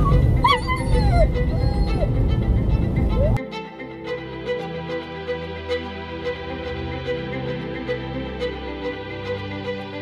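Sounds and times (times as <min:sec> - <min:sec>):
car road and engine rumble: 0:00.0 - 0:03.4
soft background music: 0:00.0 - 0:10.0.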